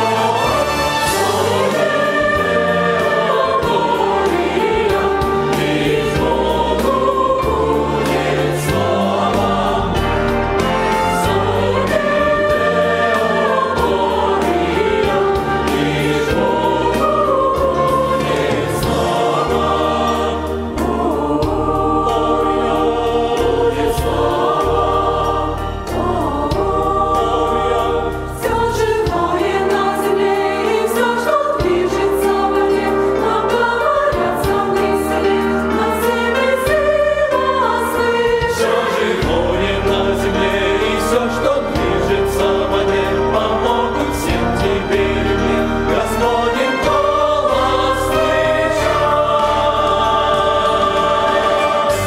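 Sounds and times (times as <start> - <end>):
mixed choir singing: 0.0 - 52.0.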